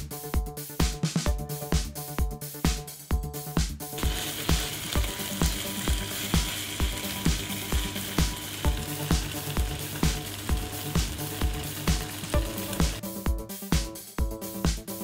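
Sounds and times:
electronic music with steady beat: 0:00.0 - 0:15.0
food sizzling in a frying pan: 0:04.0 - 0:13.0.

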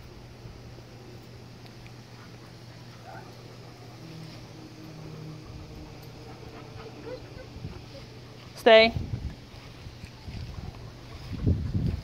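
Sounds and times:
faint low hum: 0:00.0 - 0:12.0
dog panting: 0:01.9 - 0:12.0.

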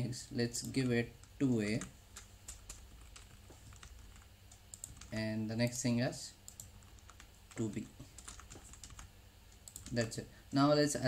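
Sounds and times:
computer keyboard keystrokes: 0:00.6 - 0:05.2, 0:06.5 - 0:10.2.

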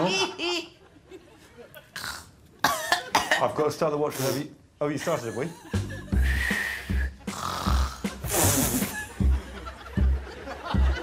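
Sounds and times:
woman snorting: 0:06.2 - 0:09.1.

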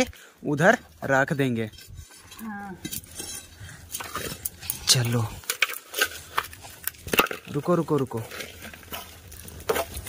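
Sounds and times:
stones clinking against metal: 0:01.0 - 0:10.0.

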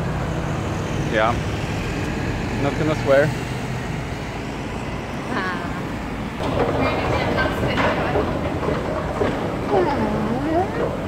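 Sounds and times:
metro station noise: 0:00.0 - 0:11.0
street traffic: 0:00.0 - 0:11.0.

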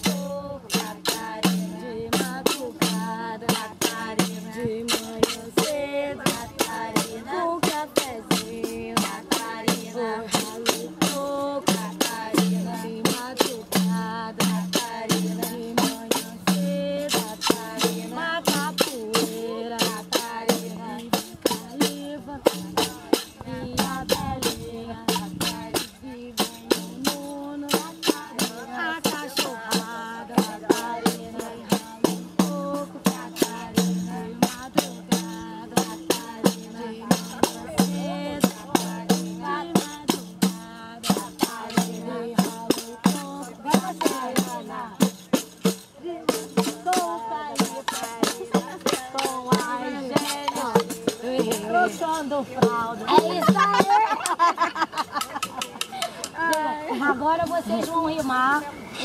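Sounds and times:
tambourines beaten in rhythm: 0:00.0 - 0:56.8
voices singing along: 0:00.0 - 0:59.0.

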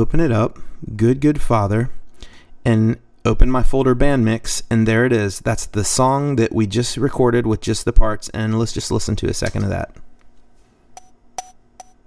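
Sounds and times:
electronic metronome clicks: 0:11.0 - 0:12.0.

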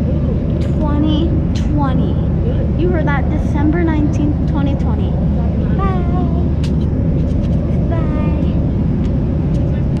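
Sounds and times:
airliner cabin drone: 0:00.0 - 0:10.0.

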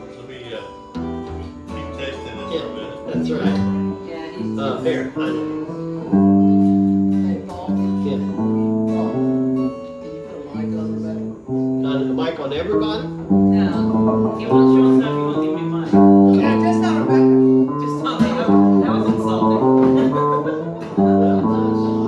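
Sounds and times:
acoustic guitar: 0:00.0 - 0:22.0
electric guitar: 0:00.0 - 0:22.0.

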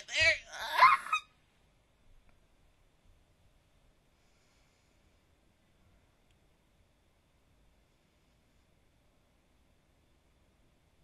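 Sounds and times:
person speaking: 0:00.0 - 0:01.2.

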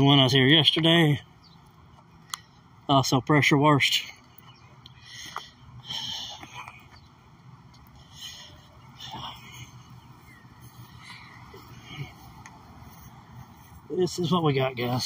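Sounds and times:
faint outdoor background noise: 0:00.0 - 0:15.0
man breathing hard: 0:04.8 - 0:13.9.

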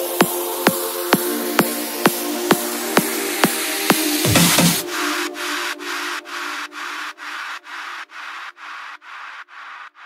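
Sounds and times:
pulsing hiss in electronic music: 0:00.0 - 0:09.9.

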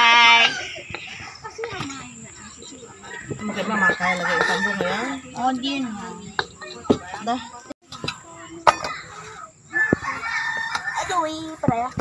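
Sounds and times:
people's voices: 0:00.0 - 0:12.0
chickens clucking: 0:00.2 - 0:12.0.

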